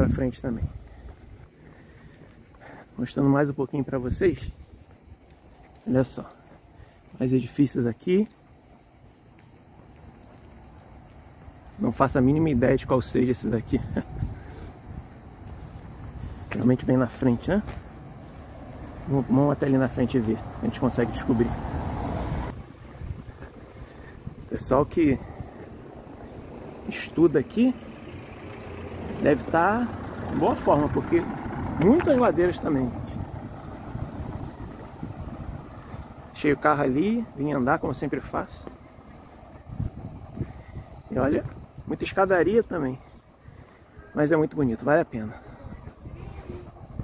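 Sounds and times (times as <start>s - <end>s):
insects buzzing: 0.0s - 47.0s
low street rumble: 0.0s - 47.0s.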